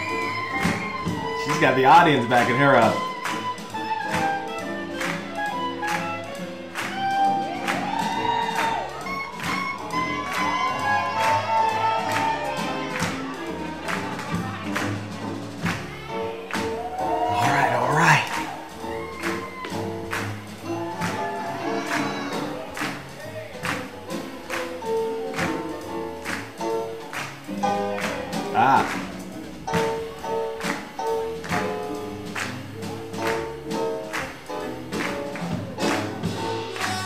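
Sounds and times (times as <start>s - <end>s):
steady drum beat: 0.0s - 37.0s
swing jazz band playing: 0.0s - 37.0s.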